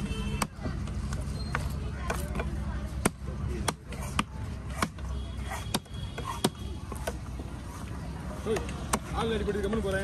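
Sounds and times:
cleaver chopping fish on wood: 0:02.0 - 0:07.3, 0:08.5 - 0:09.2.

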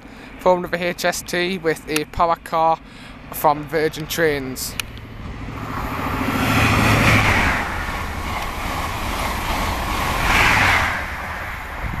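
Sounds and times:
low engine hum: 0:00.0 - 0:12.0
train passing at speed: 0:02.7 - 0:12.0.

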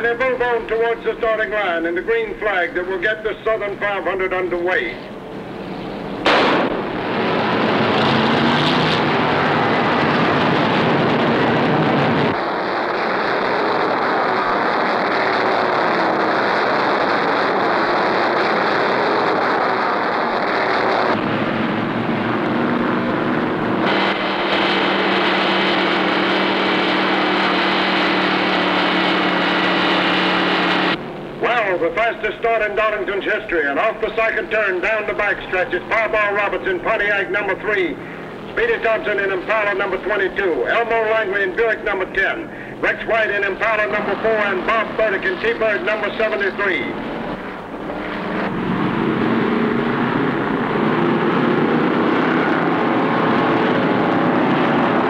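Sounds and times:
low engine drone: 0:00.0 - 0:55.0
race car engines at full throttle: 0:00.0 - 0:55.0.

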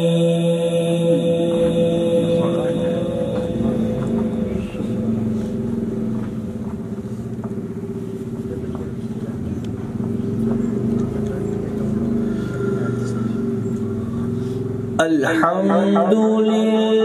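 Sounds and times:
man reciting over loudspeakers: 0:00.0 - 0:06.1, 0:14.9 - 0:17.0.

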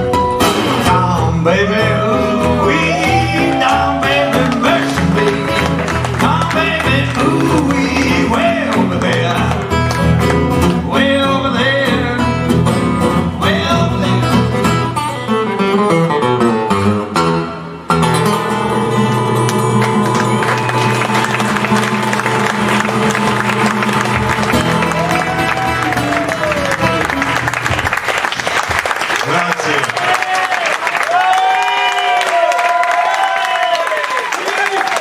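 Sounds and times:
resonator guitar: 0:00.0 - 0:28.0
acoustic guitar: 0:00.0 - 0:29.1.

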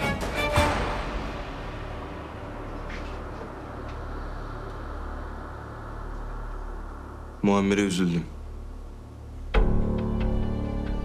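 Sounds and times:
low steady drone: 0:00.0 - 0:11.0
faint hiss: 0:01.0 - 0:10.0.

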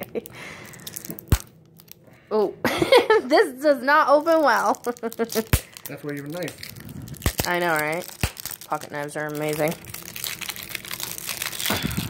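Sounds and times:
plastic shrink wrap crinkling: 0:00.0 - 0:02.1, 0:03.9 - 0:12.0.

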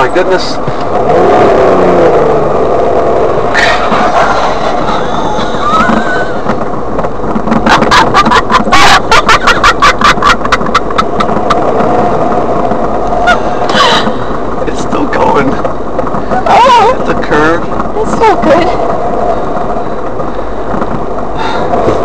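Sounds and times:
car engine and tyres rumbling: 0:00.0 - 0:22.0.

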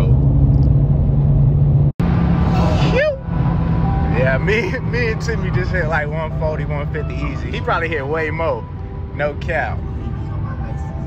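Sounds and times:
car engine droning: 0:00.0 - 0:11.0
road noise inside car: 0:00.0 - 0:11.0.

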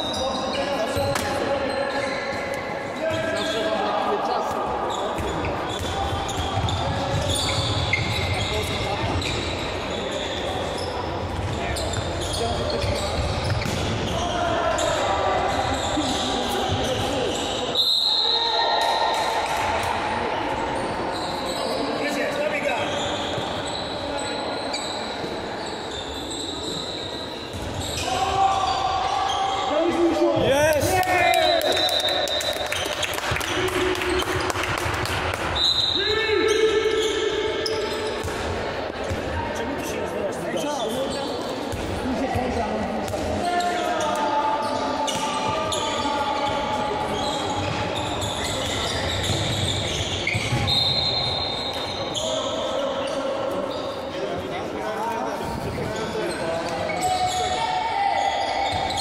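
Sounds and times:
ball bouncing on court floor: 0:12.8 - 0:14.1, 0:38.1 - 0:39.4.

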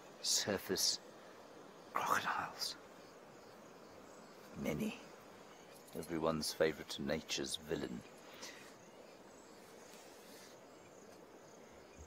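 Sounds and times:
insect chirring: 0:00.0 - 0:12.0
river water hiss: 0:00.0 - 0:12.0.

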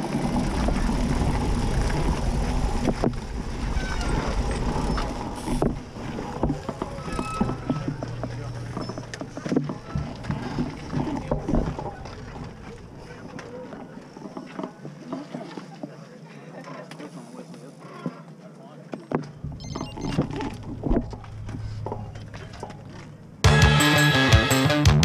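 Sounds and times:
faint voices of people: 0:10.8 - 0:19.2.

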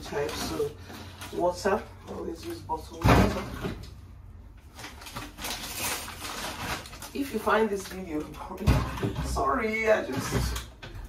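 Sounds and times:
plastic crinkling and rustling: 0:00.0 - 0:11.0.

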